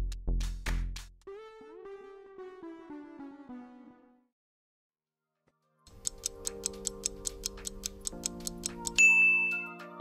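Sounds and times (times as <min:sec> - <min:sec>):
fast clock ticking: 0:05.9 - 0:09.0.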